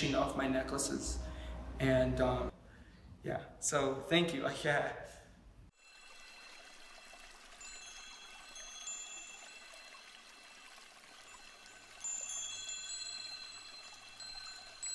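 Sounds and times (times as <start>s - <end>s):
high chime tones: 7.5s - 10.4s, 11.2s - 14.9s.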